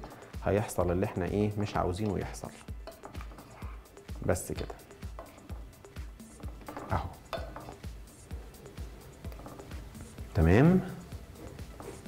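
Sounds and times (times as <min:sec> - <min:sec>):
spoon scraping metal pot: 0:02.4 - 0:10.2, 0:11.0 - 0:12.0.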